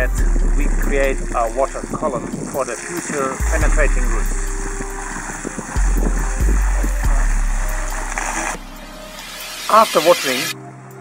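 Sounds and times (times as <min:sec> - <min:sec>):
wind on microphone: 0:00.0 - 0:09.3
water spraying from hose: 0:00.0 - 0:10.6.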